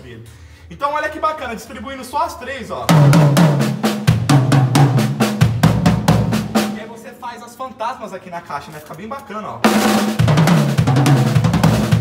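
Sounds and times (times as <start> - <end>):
drum kit playing fast run: 2.8 - 7.0, 9.6 - 12.0.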